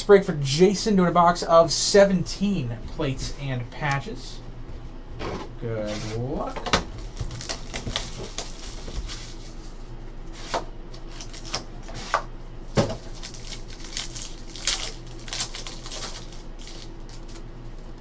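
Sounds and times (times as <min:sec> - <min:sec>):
foil wrapper tearing and crinkling: 0:07.0 - 0:09.8, 0:10.9 - 0:11.7, 0:12.9 - 0:17.5.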